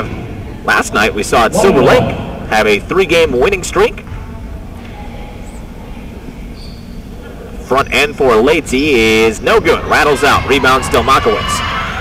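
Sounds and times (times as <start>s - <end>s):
faint crowd noise: 0.0s - 12.0s
low rumble: 1.5s - 3.0s.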